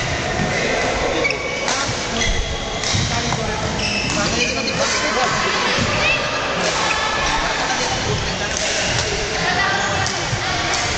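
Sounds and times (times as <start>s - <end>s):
background voices chattering: 0.0s - 10.9s
shoes squeaking on court floor: 1.2s - 4.8s
racket striking shuttlecock: 8.5s - 9.4s.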